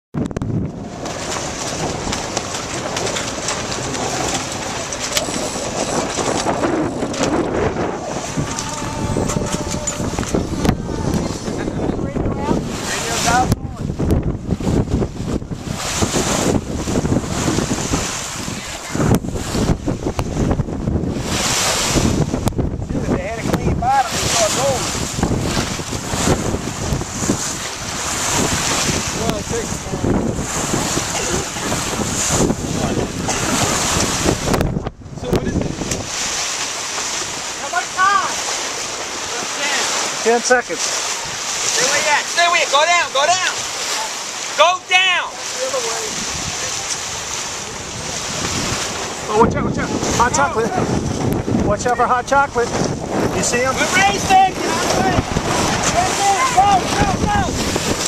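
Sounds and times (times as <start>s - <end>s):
waves splashing against hull: 0.1s - 58.0s
wind buffeting microphone: 0.1s - 58.0s
faint voices: 3.8s - 13.9s.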